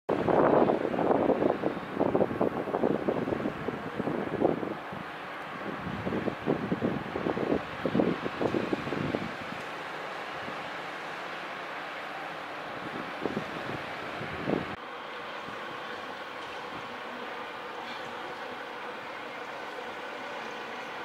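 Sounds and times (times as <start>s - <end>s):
wind buffeting microphone: 0.1s - 11.2s, 12.3s - 17.2s.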